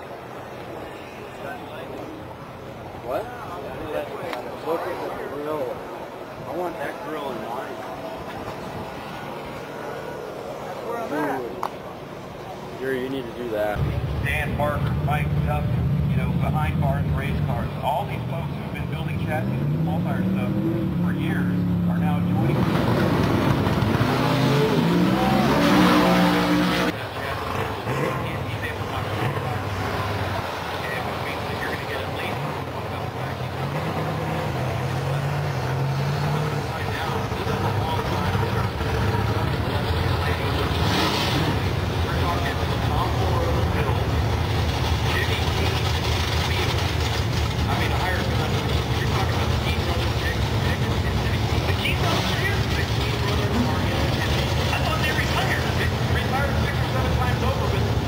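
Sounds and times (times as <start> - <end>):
engine low drone: 13.4 - 58.0
car engine revving: 18.7 - 58.0.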